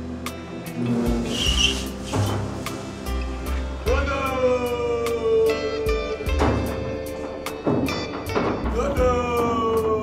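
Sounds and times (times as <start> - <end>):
music with steady beat: 0.0 - 10.0
brief high squeal: 0.9 - 2.4.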